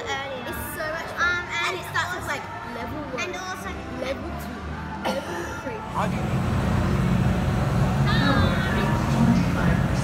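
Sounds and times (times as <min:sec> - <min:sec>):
girl's voice: 0:00.0 - 0:04.6
amusement ride rumbling: 0:05.9 - 0:10.0.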